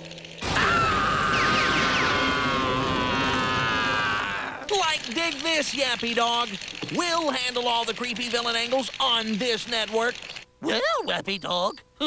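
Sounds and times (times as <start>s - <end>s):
high-pitched cartoon scream: 0.4s - 4.7s.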